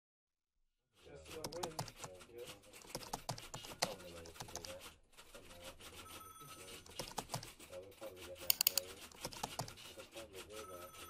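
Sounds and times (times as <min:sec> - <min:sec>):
computer keyboard typing: 0:01.2 - 0:11.0.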